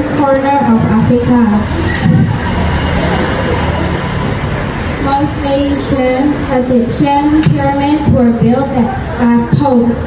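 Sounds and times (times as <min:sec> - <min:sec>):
vehicle engine rumbling: 0:00.0 - 0:09.4.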